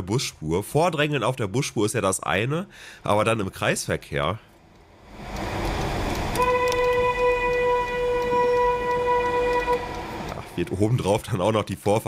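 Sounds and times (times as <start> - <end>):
slow traffic noise: 4.0 - 12.0
long car horn honk: 6.4 - 10.2.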